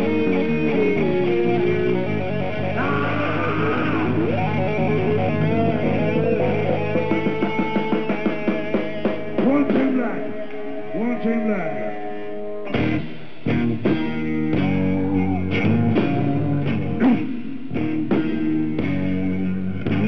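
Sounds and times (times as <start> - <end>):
electric guitar: 0.0 - 20.0
live rock band playing: 0.0 - 20.0.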